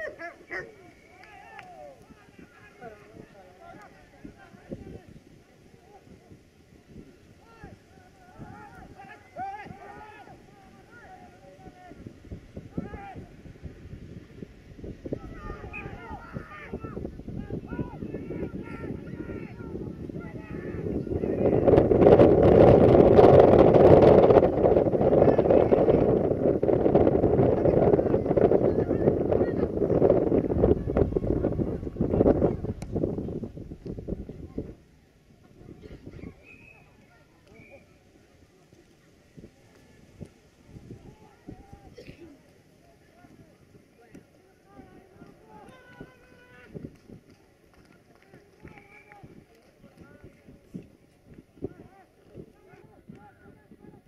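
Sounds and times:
distant shouts and calls: 0:00.0 - 0:13.6, 0:15.1 - 0:21.8, 0:35.8 - 0:38.1
wind buffeting microphone: 0:01.3 - 0:37.0, 0:39.2 - 0:42.3, 0:43.0 - 0:54.0.

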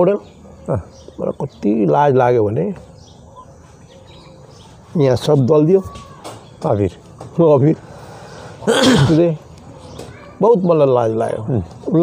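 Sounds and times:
outdoor background noise: 0:00.0 - 0:12.0
faint bird chirps: 0:02.8 - 0:05.2.

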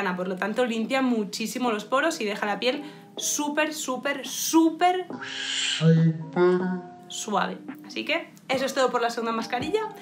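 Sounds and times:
faint guitar music: 0:00.1 - 0:10.0.

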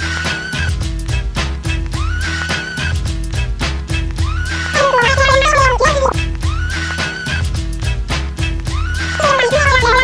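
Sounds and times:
electronic music with heavy bass: 0:04.8 - 0:06.2, 0:09.2 - 0:10.0.

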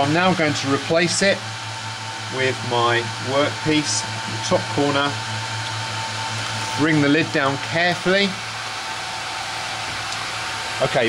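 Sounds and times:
laser cutter fans whirring: 0:00.0 - 0:11.0.

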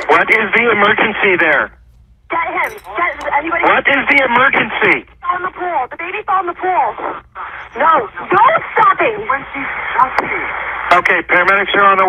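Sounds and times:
voices over phone line: 0:00.0 - 0:12.0.

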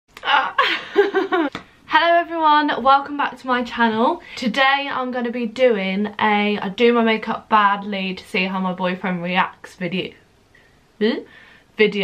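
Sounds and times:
young woman laughing: 0:00.3 - 0:01.6.

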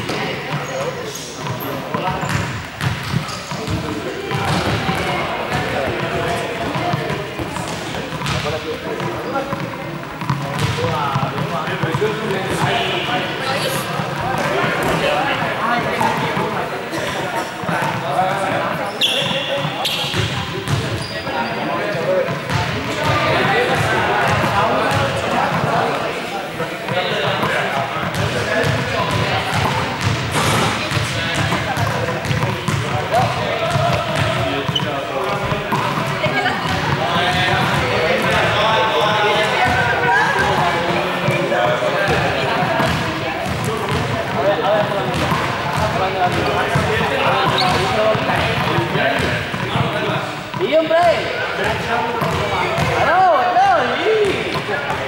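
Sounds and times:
balls bouncing on hall floor: 0:00.0 - 0:55.0
people chattering: 0:00.0 - 0:55.0.

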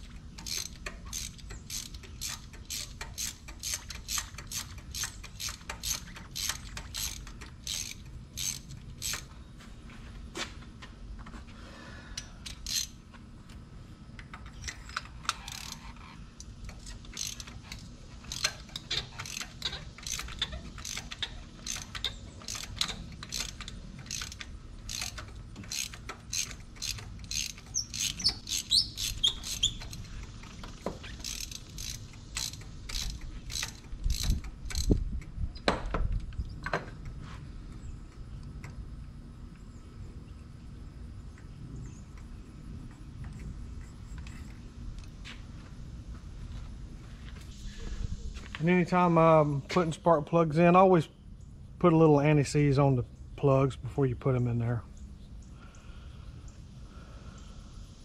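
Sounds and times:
ratchet wrench clicking: 0:00.0 - 0:09.3, 0:12.2 - 0:13.0, 0:14.2 - 0:35.3.

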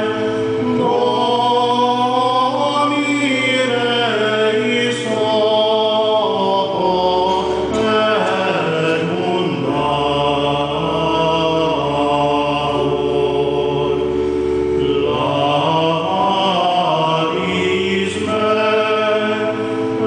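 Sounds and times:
choir singing chant: 0:00.0 - 0:20.0.

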